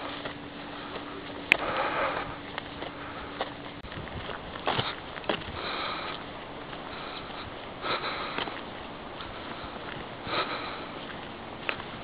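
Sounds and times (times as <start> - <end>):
person breathing heavily: 0.6 - 3.6, 4.7 - 11.2.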